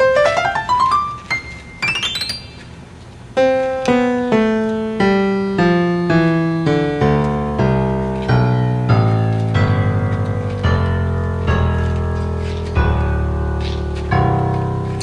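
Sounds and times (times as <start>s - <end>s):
solo piano music: 0.0s - 15.0s.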